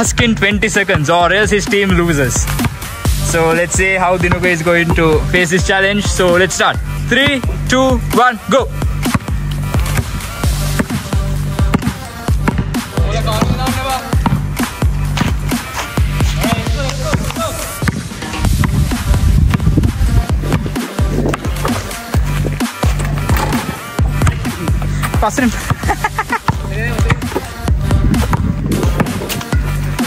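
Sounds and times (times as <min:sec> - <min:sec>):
background music with heavy bass beat: 0:00.0 - 0:30.0.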